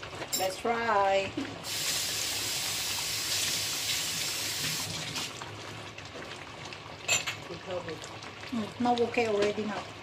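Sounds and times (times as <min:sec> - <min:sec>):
running tap water: 0:01.6 - 0:05.7.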